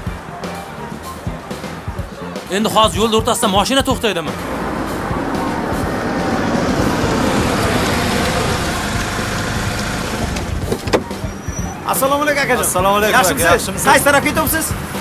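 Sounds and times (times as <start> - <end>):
car driving and slowing: 4.3 - 15.0.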